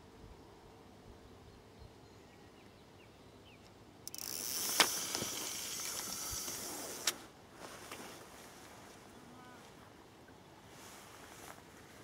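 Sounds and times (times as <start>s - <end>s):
fishing reel clicker ratcheting: 4.0s - 7.2s
sharp reel click: 4.0s - 7.2s.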